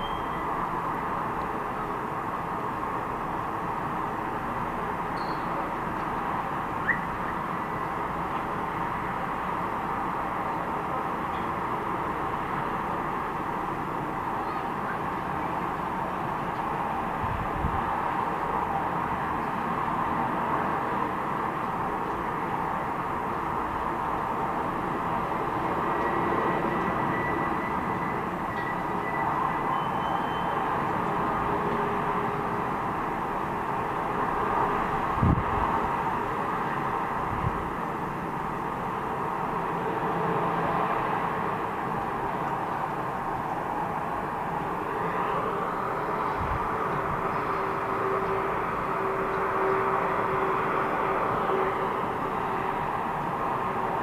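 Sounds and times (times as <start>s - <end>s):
highway traffic rushing: 0.0s - 54.0s.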